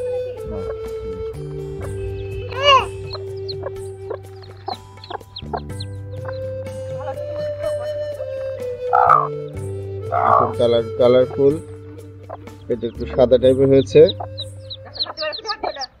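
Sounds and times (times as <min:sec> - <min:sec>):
chicks peeping: 0:00.0 - 0:09.3, 0:10.1 - 0:16.0
background music: 0:00.0 - 0:16.0
hen squawking and clucking: 0:00.0 - 0:16.0.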